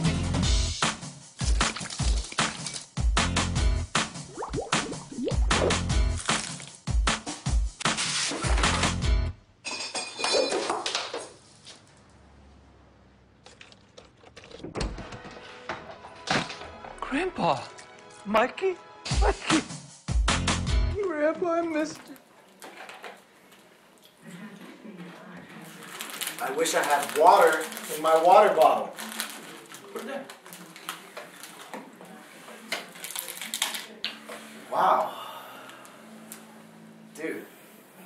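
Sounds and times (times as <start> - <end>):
chips crushed in a hand: 6.2 - 6.8
chip bag crinkling: 25.6 - 31.7, 32.9 - 33.8.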